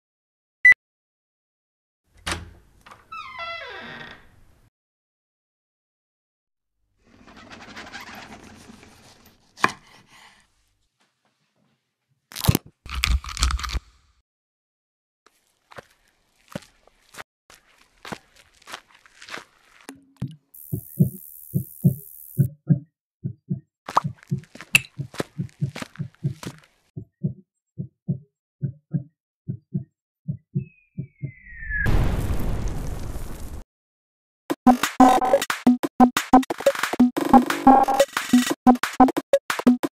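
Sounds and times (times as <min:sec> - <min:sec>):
small crackles: 0:15.3 - 0:19.9, 0:23.9 - 0:26.9
heartbeat thumps: 0:20.2 - 0:31.3
explosion blast: 0:31.7 - 0:33.6.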